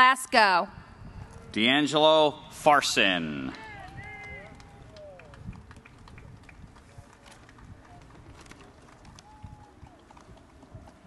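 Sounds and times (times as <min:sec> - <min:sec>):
stadium ambience: 0:00.0 - 0:11.0
public-address voice echoing: 0:01.6 - 0:04.5.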